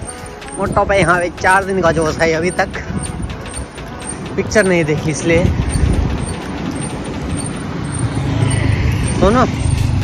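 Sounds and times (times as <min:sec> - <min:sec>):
car passing with road noise: 0:01.6 - 0:10.0.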